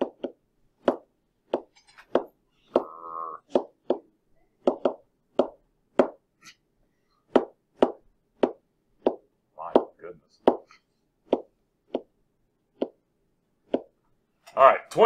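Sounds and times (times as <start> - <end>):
pen tapping on whiteboard: 0.0 - 6.2, 7.3 - 13.0, 13.7 - 14.0
person speaking: 9.6 - 10.6, 14.5 - 15.0.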